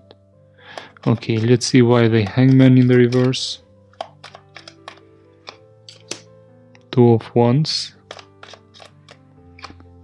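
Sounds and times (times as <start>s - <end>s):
soft background music: 0.0s - 10.0s
cards being shuffled: 0.8s - 6.3s, 8.0s - 10.0s.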